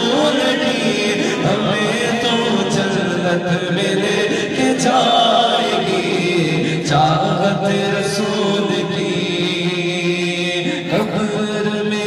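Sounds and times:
male voices chanting: 0.0 - 12.0
man singing into a microphone: 0.0 - 12.0.

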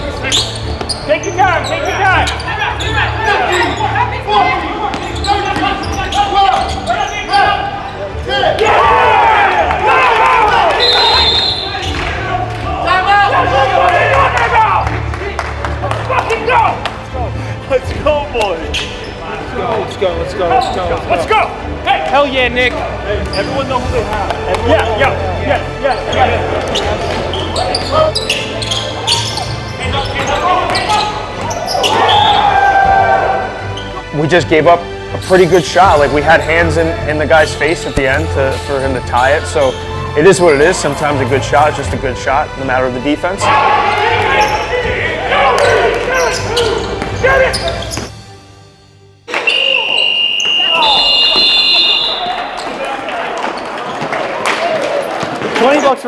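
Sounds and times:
players shouting: 0.0 - 17.2, 20.4 - 34.0, 43.4 - 48.0, 49.3 - 56.0
shoe squeaks and knocks: 0.2 - 3.9, 4.8 - 7.5, 18.6 - 19.2, 25.9 - 32.4, 45.6 - 48.2, 49.4 - 52.8.

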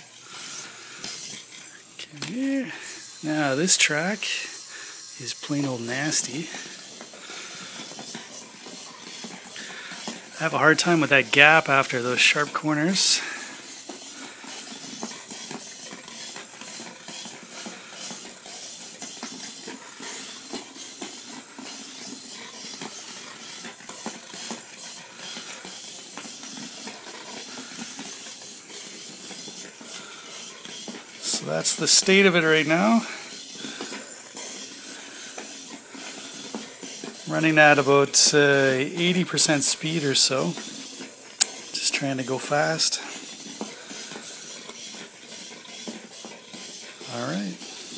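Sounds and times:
electric motors whirring: 0.0 - 47.9
faint hiss: 0.3 - 6.8.

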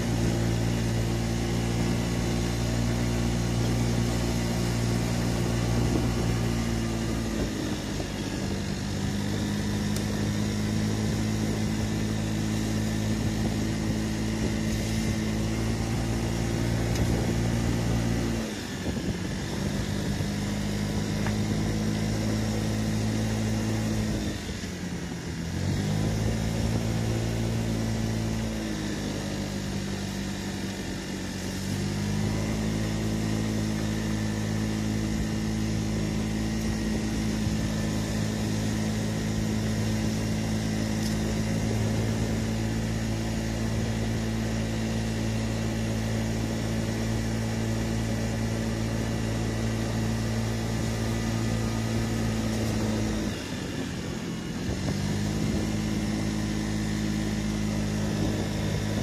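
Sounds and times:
scooter engine under throttle: 0.0 - 59.0.

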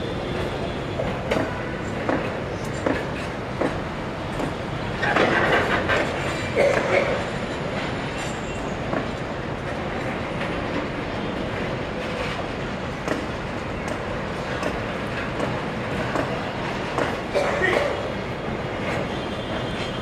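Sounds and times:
freight train rumble: 0.0 - 20.0
train wheels clicking over rail joints: 1.0 - 20.0.

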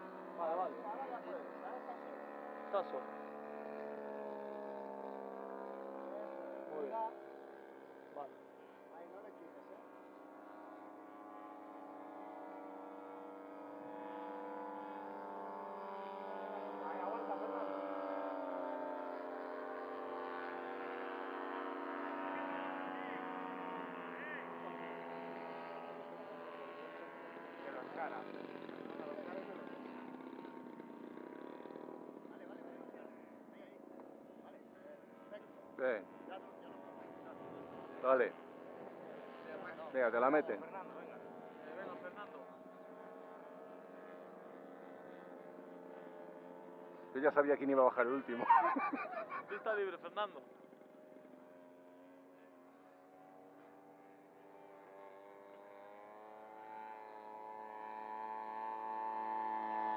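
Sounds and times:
model airplane engine in flight: 0.0 - 59.9.

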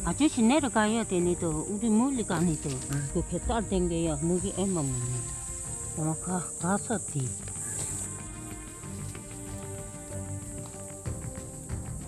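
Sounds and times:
woman talking: 0.0 - 5.4, 6.0 - 7.4
insects chirring: 0.0 - 12.0.

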